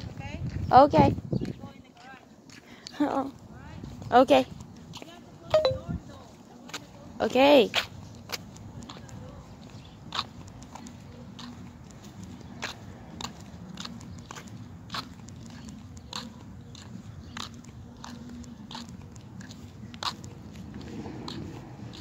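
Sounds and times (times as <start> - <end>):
footsteps on concrete: 1.4 - 5.5, 6.1 - 22.0.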